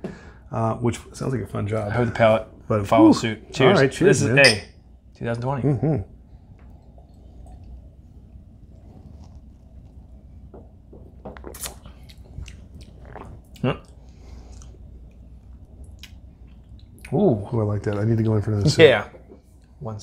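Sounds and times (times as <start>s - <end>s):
low room hum: 0.0s - 20.0s
mouth and lip sipping sounds: 11.3s - 17.1s.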